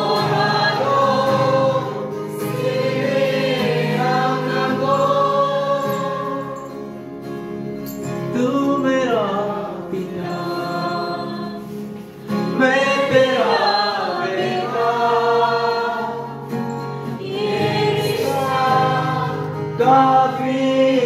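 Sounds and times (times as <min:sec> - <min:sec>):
group singing worship song: 0:00.0 - 0:07.4, 0:08.4 - 0:21.0.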